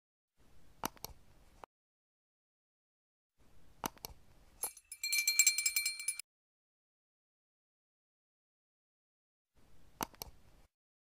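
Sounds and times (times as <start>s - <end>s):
click: 0.8s - 1.2s, 10.0s - 10.4s
small bell jingling rapidly: 4.6s - 6.2s.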